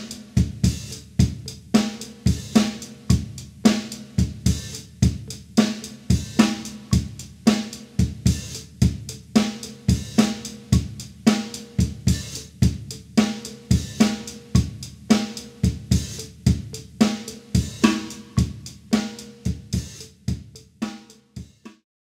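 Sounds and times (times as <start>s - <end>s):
drum kit groove: 0.0s - 21.8s.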